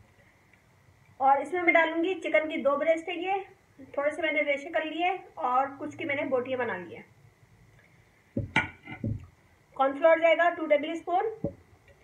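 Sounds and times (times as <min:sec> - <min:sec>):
ceramic plate knocking on table: 0:08.4 - 0:09.2.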